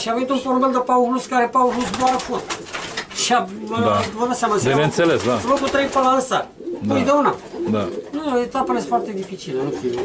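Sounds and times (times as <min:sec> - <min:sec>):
pigeons cooing: 0:01.6 - 0:10.0
man talking: 0:03.7 - 0:06.0, 0:06.8 - 0:08.1.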